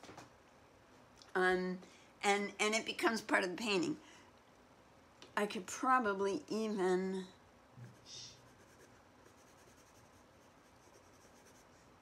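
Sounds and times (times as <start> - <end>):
pencil scratching on paper: 7.9 - 11.9.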